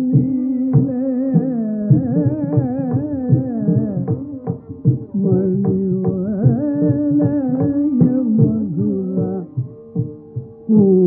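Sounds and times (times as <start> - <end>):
soft percussion strokes: 0.0 - 11.0.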